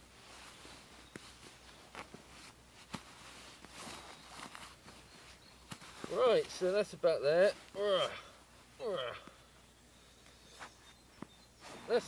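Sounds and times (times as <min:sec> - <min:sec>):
sleeping bag fabric rustling: 0:00.0 - 0:08.8, 0:09.4 - 0:12.0.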